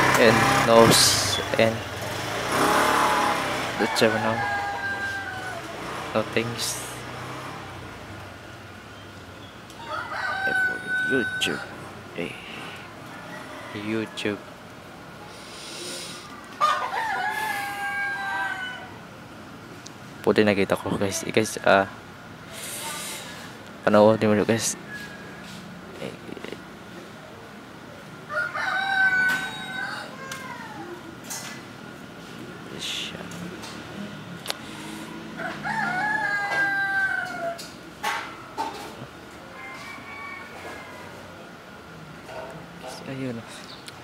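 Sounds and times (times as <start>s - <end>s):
rooster crowing: 2.5s - 6.0s, 9.8s - 14.4s, 16.1s - 19.1s, 24.0s - 25.9s, 28.3s - 30.8s, 34.6s - 38.8s, 39.4s - 41.5s.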